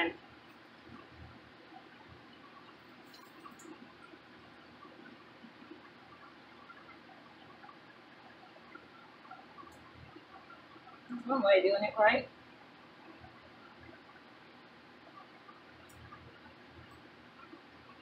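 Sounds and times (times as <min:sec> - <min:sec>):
small clicks: 0:02.9 - 0:04.1.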